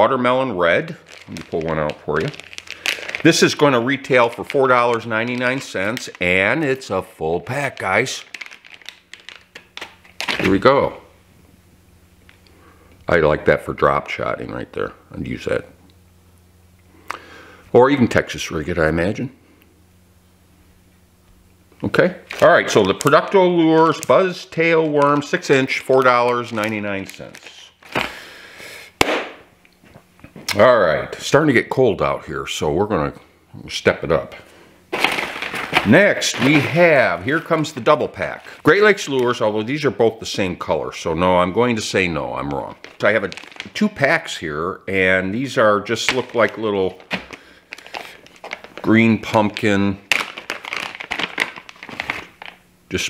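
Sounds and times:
plastic packaging rustle: 0:00.7 - 0:10.6, 0:22.2 - 0:28.3, 0:34.9 - 0:39.6, 0:42.4 - 0:44.4, 0:45.8 - 0:52.7
plastic packaging snap: 0:07.8 - 0:10.6, 0:22.2 - 0:28.2, 0:29.0 - 0:29.5, 0:34.9 - 0:36.8, 0:42.8 - 0:43.8, 0:46.0 - 0:48.9, 0:49.5 - 0:52.6.

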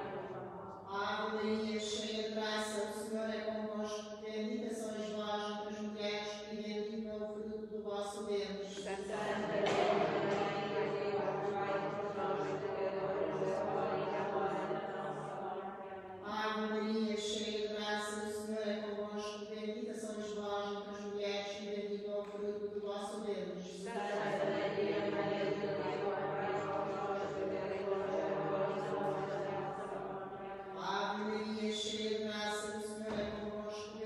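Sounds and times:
person chanting: 0:00.0 - 0:34.0
person chanting on held notes: 0:08.9 - 0:15.6, 0:23.9 - 0:31.7.

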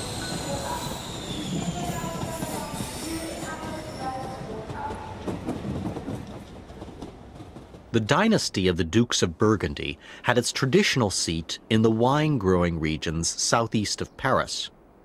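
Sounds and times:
train rail and wheel noise: 0:00.0 - 0:11.7.

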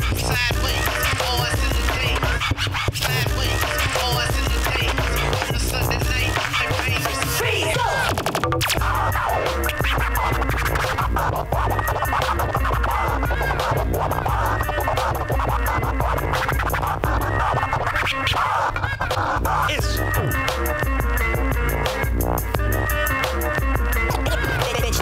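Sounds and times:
bass-heavy beat: 0:00.0 - 0:25.0
record scratching: 0:00.0 - 0:25.0.

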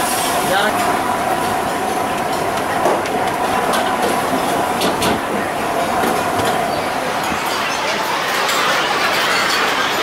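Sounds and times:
kitchen mechanical roar: 0:00.0 - 0:10.0.

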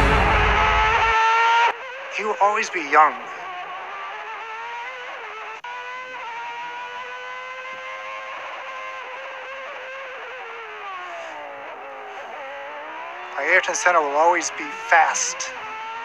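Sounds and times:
racing car engine revving: 0:00.0 - 0:16.0.

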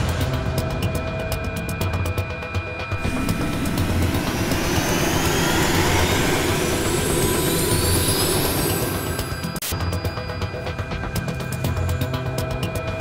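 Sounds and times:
jet engine flyby with rising whine: 0:00.3 - 0:12.0.

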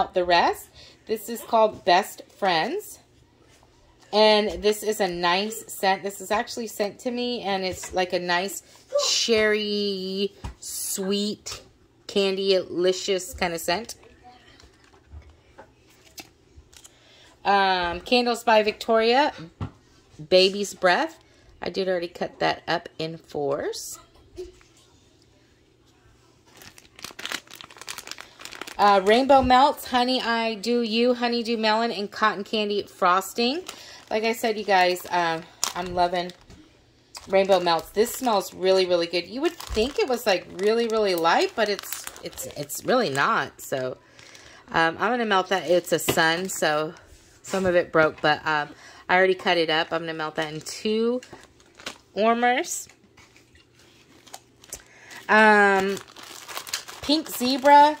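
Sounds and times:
plastic packaging crinkling: 0:13.7 - 0:17.0, 0:26.4 - 0:30.0, 0:32.3 - 0:44.4, 0:50.3 - 0:58.0.

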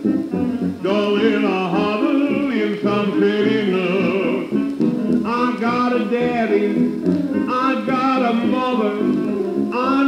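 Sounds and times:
old dance orchestra record: 0:00.0 - 0:10.0.

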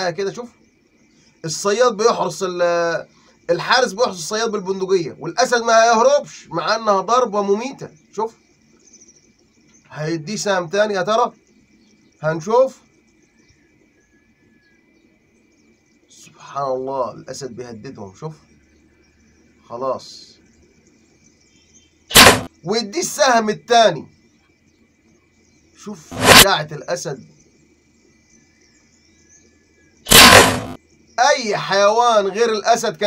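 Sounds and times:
bow string snap: 0:22.1 - 0:22.5, 0:30.1 - 0:30.8.

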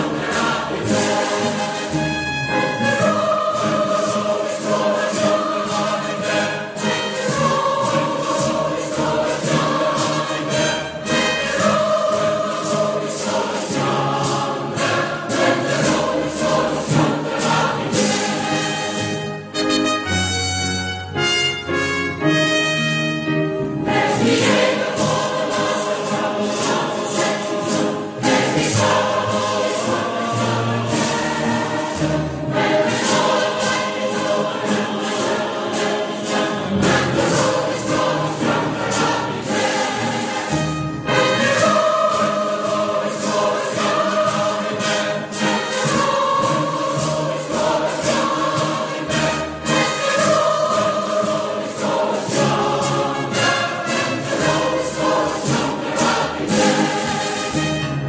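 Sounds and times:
group singing a hymn: 0:00.0 - 0:19.8, 0:23.8 - 0:58.0
instrumental accompaniment with beat: 0:00.0 - 0:58.0.

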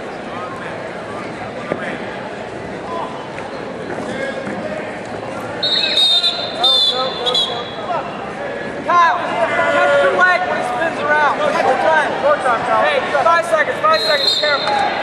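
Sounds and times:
referee's whistle blasts: 0:05.6 - 0:07.8, 0:13.9 - 0:14.9.

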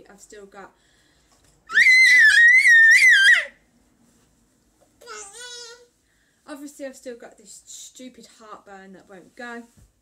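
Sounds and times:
toddler screaming: 0:01.7 - 0:03.6.

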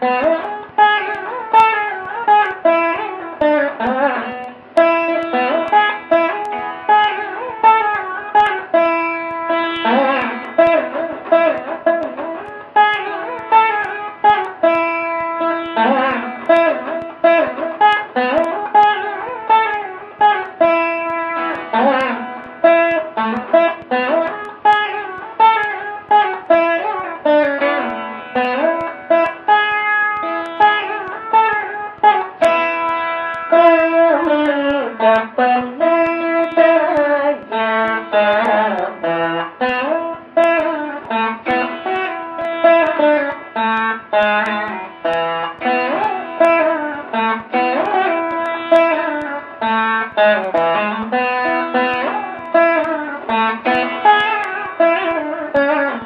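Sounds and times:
plucked string instrument melody: 0:00.0 - 0:56.0.

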